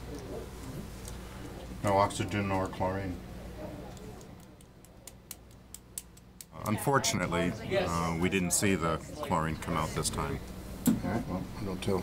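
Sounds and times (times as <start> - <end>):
faint irregular clicks: 3.9 - 6.5.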